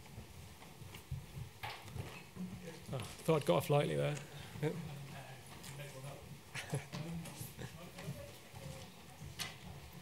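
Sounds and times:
faint off-microphone speech: 0:02.5 - 0:10.0.

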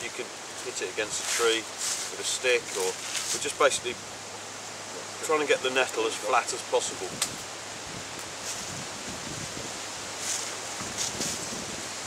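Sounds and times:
wind and rustling: 0:00.0 - 0:12.0.

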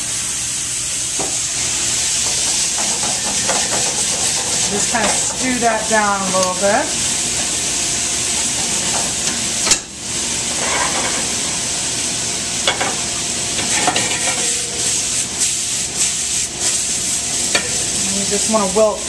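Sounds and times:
pans sizzling: 0:00.0 - 0:19.0.

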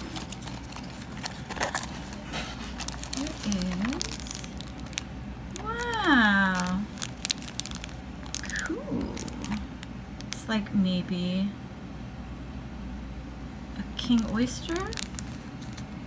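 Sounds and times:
plastic bag crinkling: 0:00.0 - 0:10.4, 0:14.0 - 0:15.9.

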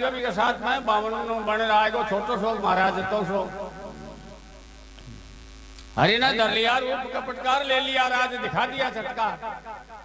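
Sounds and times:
man's voice: 0:00.0 - 0:04.4, 0:06.0 - 0:10.0
electrical mains hum: 0:00.0 - 0:10.0.

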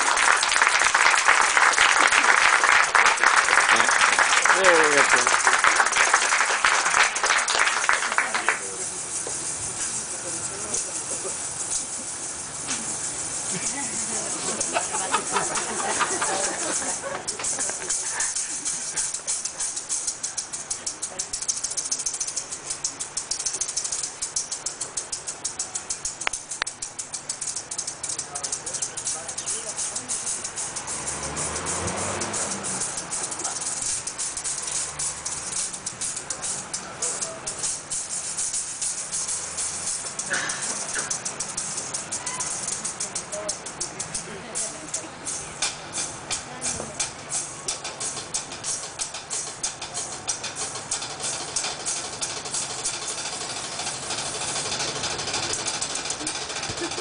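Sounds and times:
audience applauding: 0:00.0 - 0:08.8, 0:14.4 - 0:18.4
rapid maracas rhythm: 0:00.0 - 0:57.0
low double bass notes: 0:20.4 - 0:40.3.

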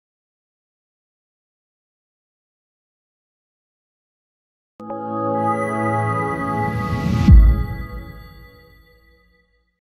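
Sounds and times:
held synth chord: 0:04.8 - 0:09.1
rising whoosh: 0:06.0 - 0:08.6
sub-bass boom: 0:07.1 - 0:08.2.

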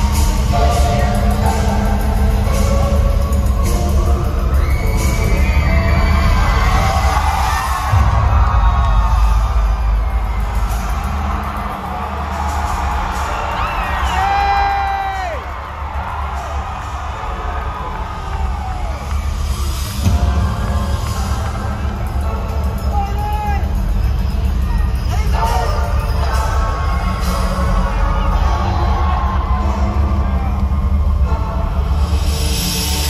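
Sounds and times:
bass-heavy music from speakers: 0:00.0 - 0:33.0
crowd cheering and screaming: 0:00.0 - 0:33.0.

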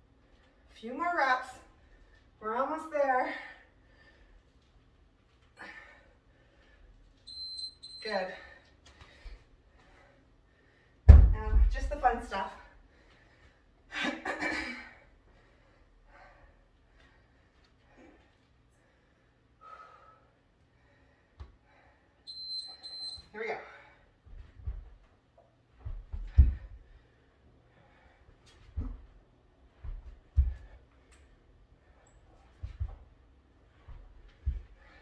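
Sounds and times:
body thudding on exercise mat: 0:11.1 - 0:11.8.

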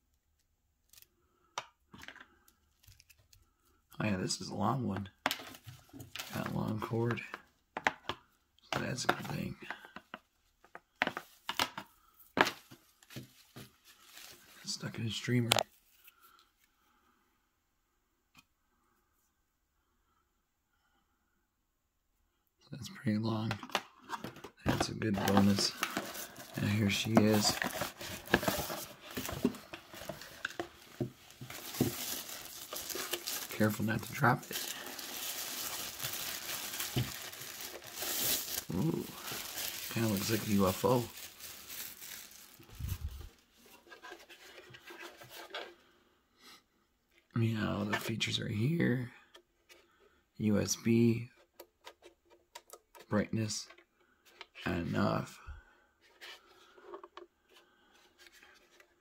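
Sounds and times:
handling taps and rustles: 0:05.2 - 0:14.4, 0:23.3 - 0:33.5
plastic bag crinkling: 0:25.0 - 0:43.3.

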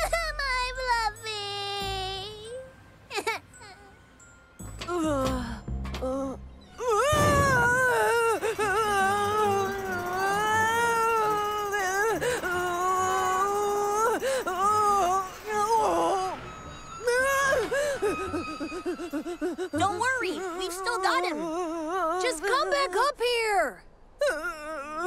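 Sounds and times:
cartoon boy wailing in fright: 0:07.0 - 0:16.4.

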